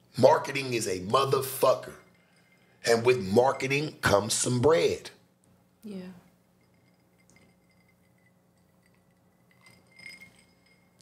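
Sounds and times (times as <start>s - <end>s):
drinking glass clinking: 6.6s - 11.0s
faint steady high tone: 6.6s - 11.0s.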